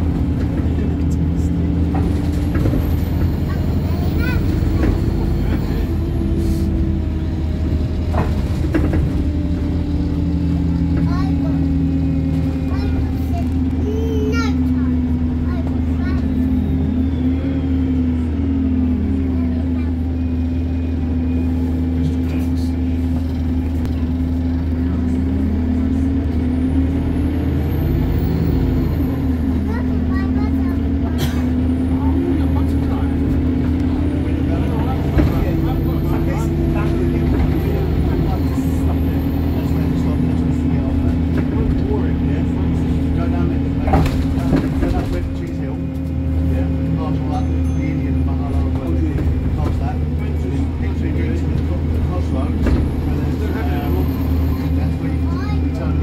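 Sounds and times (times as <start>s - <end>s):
bus engine drone: 0.0s - 56.0s.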